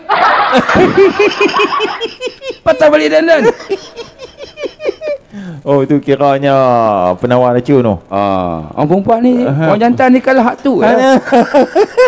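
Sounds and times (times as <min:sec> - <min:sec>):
men laughing hard: 0:00.0 - 0:05.3, 0:10.8 - 0:12.0.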